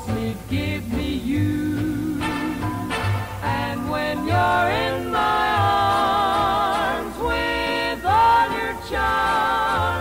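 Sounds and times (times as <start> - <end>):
harmony singing on old radio: 0.0 - 10.0.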